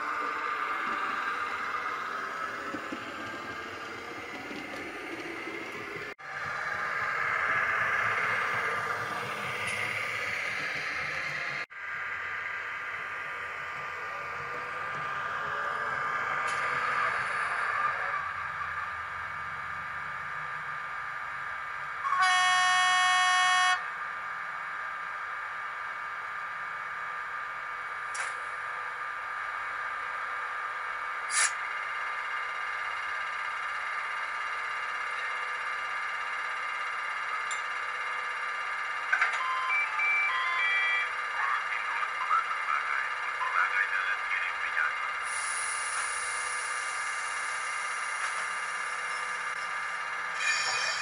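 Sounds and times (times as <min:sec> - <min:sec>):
electric locomotive whine: 0:00.0 - 0:51.0
locomotive horn blast: 0:22.0 - 0:23.9.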